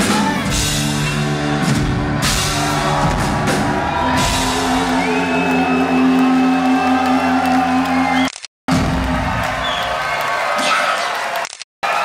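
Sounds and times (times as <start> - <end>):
live rock band playing: 0.0 - 7.1.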